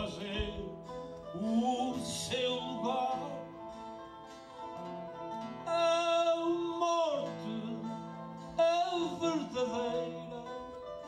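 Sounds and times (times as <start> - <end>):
man singing: 0.0 - 3.9, 5.6 - 11.0
plucked guitar: 0.0 - 11.0.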